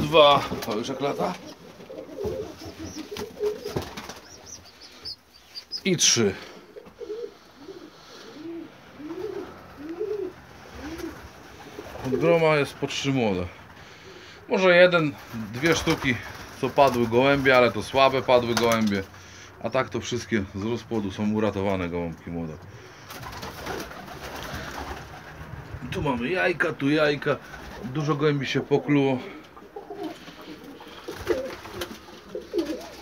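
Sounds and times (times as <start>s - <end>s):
pigeons cooing: 1.1s - 12.2s, 28.7s - 33.0s.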